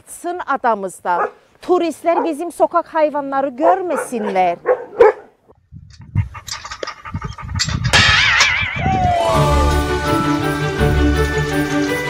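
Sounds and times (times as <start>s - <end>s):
dogs barking and yipping: 1.1s - 1.4s, 2.0s - 2.5s, 3.5s - 8.6s.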